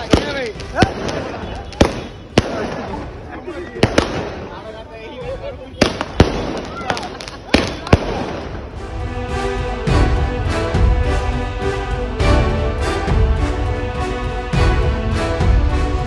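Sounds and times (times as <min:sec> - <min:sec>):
firework bangs: 0:00.0 - 0:04.8, 0:05.7 - 0:08.8
onlookers talking: 0:00.0 - 0:09.0.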